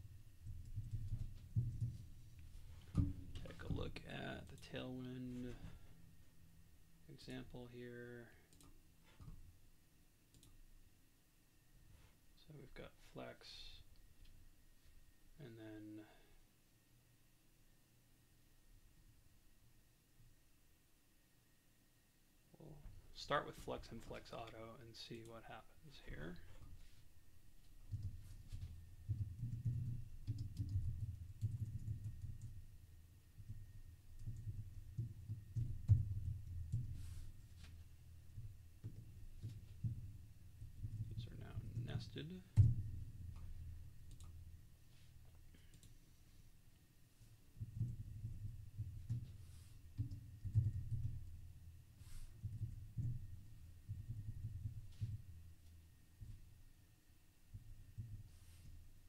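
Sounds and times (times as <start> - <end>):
muffled keyboard typing: 27.9 - 32.6, 33.4 - 37.7
computer keyboard typing: 29.1 - 32.6.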